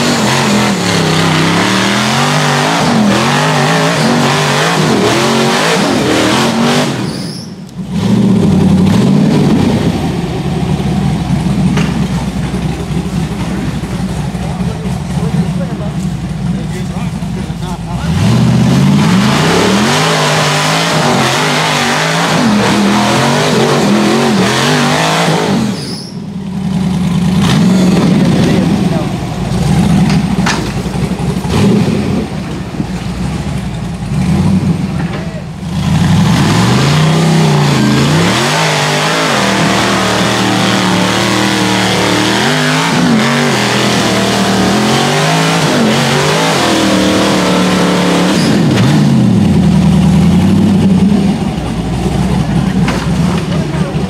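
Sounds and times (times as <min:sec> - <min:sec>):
buggy engine revving: 0:00.0 - 0:54.0.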